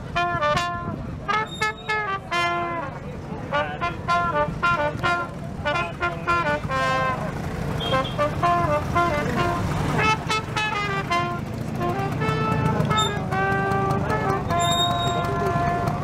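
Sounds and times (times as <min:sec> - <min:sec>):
scooter engines rumbling: 0:00.0 - 0:16.0
trumpet playing lively tune: 0:00.0 - 0:16.0.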